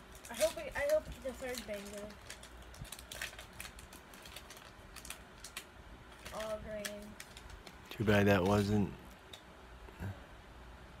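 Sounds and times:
trading cards clicking and rustling: 0.0 - 9.4.

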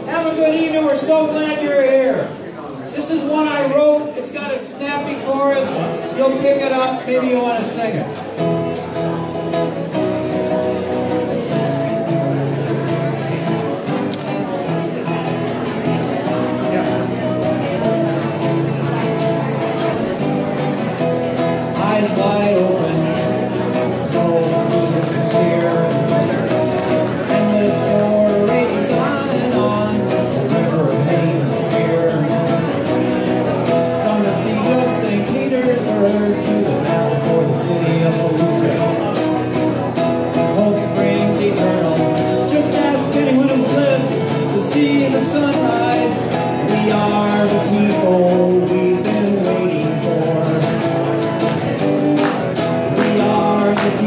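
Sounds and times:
man singing: 0.0 - 2.3, 2.9 - 8.1, 15.9 - 54.0
acoustic guitar strumming: 0.0 - 54.0.

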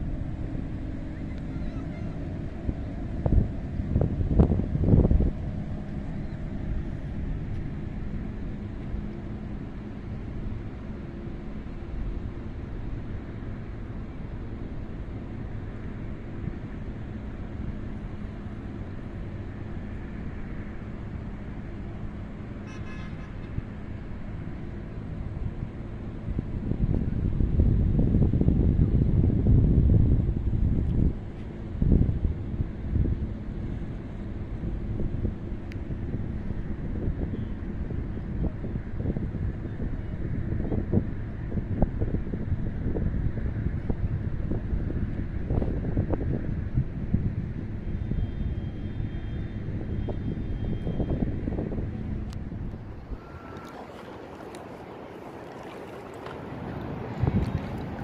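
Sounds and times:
wind buffeting microphone: 0.0 - 22.4, 23.4 - 58.0
city traffic hum: 0.0 - 58.0.

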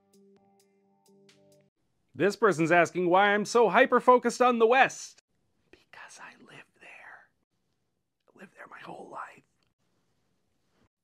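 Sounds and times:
man whispering: 5.8 - 7.4, 8.3 - 9.7.

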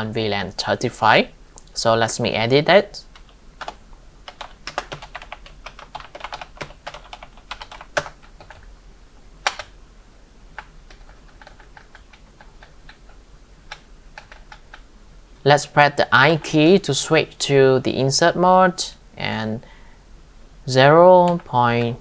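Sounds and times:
typing on computer keyboard: 3.2 - 8.6, 9.4 - 9.7, 10.6 - 14.8.

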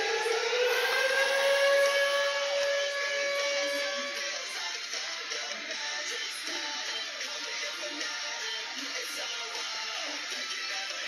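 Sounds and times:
goal horn sounding: 0.8 - 4.5.

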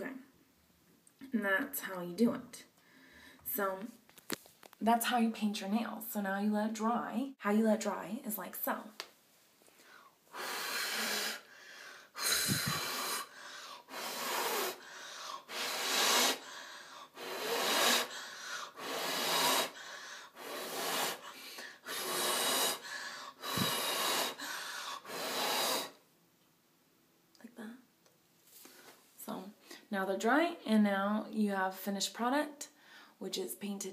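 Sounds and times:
person blowing short breathy puffs: 10.3 - 26.0.

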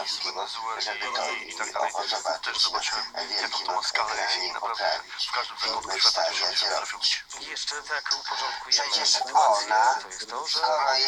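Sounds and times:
radio voices through small speaker: 0.0 - 11.0.

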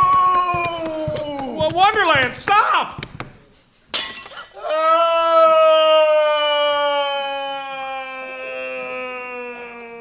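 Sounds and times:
falling scream: 4.6 - 10.0.

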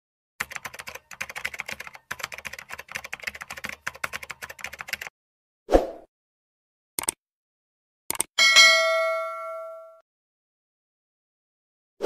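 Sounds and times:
keyboard typing clicks: 0.4 - 5.1, 7.0 - 7.2, 8.1 - 8.3.

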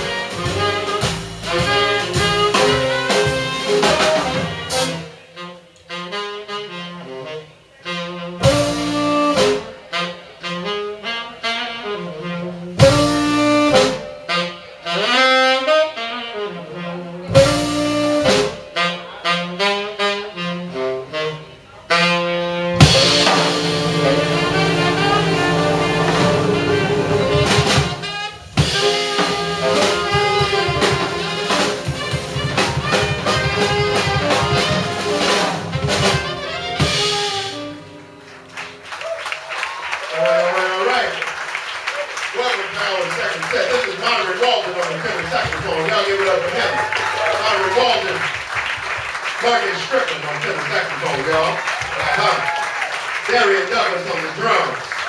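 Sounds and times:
double bass: 0.0 - 5.2, 7.9 - 38.1
band playing sharp hits: 0.0 - 5.5, 8.4 - 10.8, 12.2 - 15.2, 17.2 - 19.0, 22.0 - 38.8
drums and cymbals: 0.0 - 5.5, 8.4 - 10.0, 12.2 - 14.5, 17.2 - 19.0, 22.5 - 38.2
saxophones: 0.0 - 38.4
piano: 0.0 - 44.0.

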